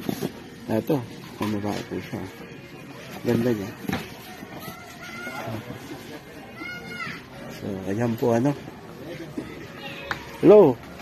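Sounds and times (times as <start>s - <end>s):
murmur of background chatter: 0.0s - 11.0s.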